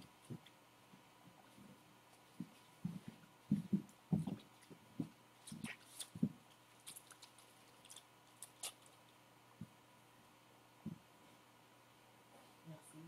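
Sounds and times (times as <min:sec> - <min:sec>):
soft low thumps: 0:00.0 - 0:06.4, 0:10.8 - 0:11.1.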